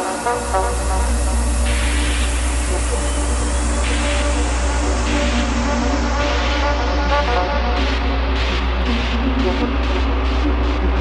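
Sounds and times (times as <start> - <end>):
deep sub-bass drone: 0.0 - 11.0
held synth tones: 0.0 - 11.0
hissy noise swells: 0.0 - 11.0
techno music breakdown: 0.0 - 11.0.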